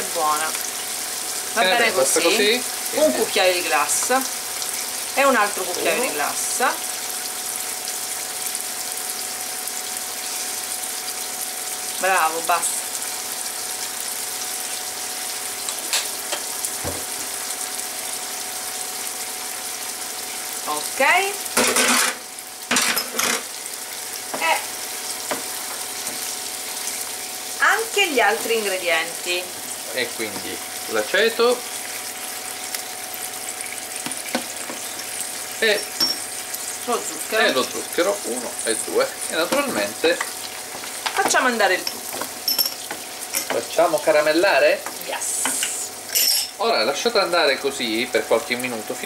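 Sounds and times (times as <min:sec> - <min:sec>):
onions sizzling in a pan: 0:00.0 - 0:49.0.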